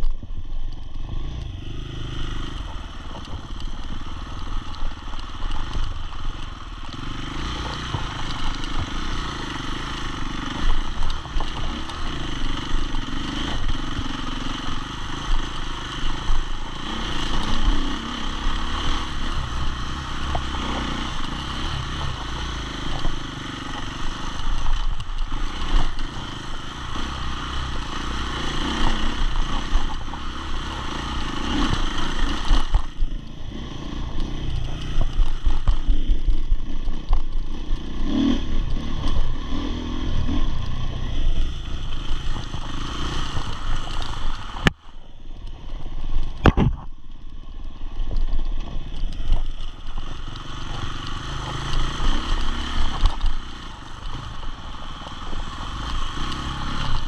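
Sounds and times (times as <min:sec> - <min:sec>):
motorcycle engine revving: 0:00.0 - 0:57.0.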